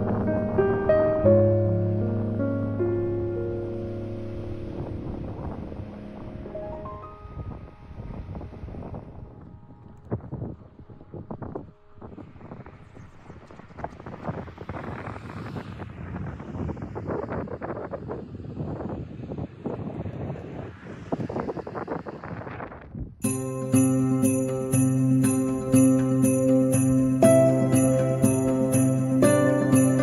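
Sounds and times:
wind buffeting microphone: 0:00.0 - 0:23.3.

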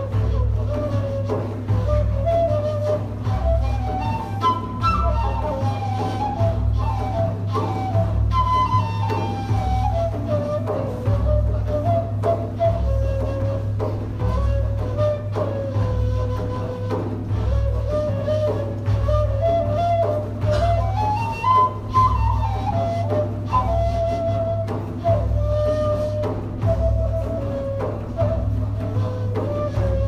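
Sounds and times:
flute melody: 0:00.0 - 0:30.0
hand drum beat: 0:00.0 - 0:30.0
oud plucked: 0:00.0 - 0:30.0.

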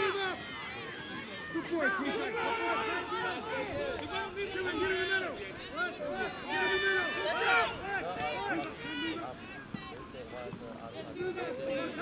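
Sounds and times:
people calling out: 0:00.0 - 0:12.0.

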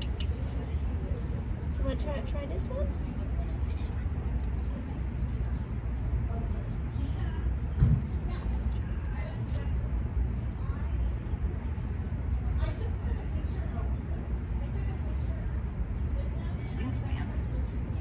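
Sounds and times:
low background rumble: 0:00.0 - 0:18.0
thump: 0:07.8 - 0:08.1.

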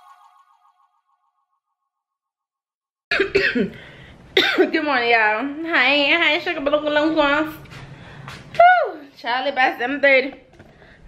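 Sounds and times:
woman speaking: 0:09.0 - 0:10.4.

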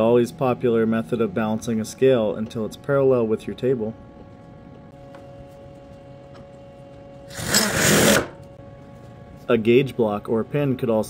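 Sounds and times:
machine shop hum: 0:00.0 - 0:11.0.

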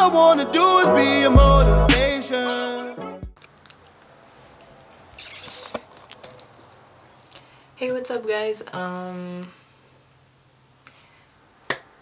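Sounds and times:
camera handling rustle: 0:04.8 - 0:06.8.

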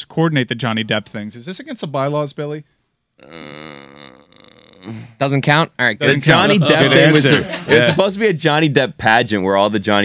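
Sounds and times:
man saying uh: 0:06.0 - 0:08.2.

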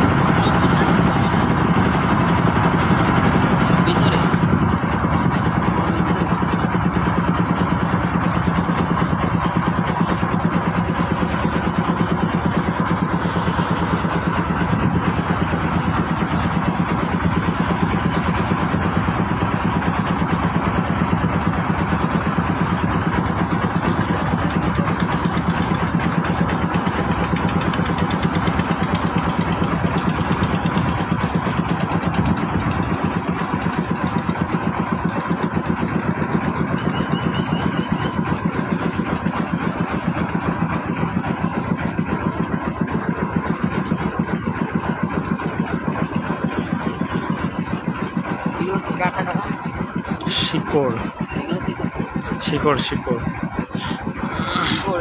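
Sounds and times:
boat engine chugging: 0:00.0 - 0:55.0.

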